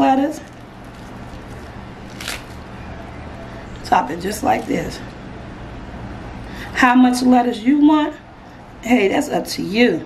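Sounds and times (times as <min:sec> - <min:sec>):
low steady hum: 0:00.0 - 0:10.0
crisp lettuce rustle: 0:00.3 - 0:02.7, 0:03.8 - 0:05.0.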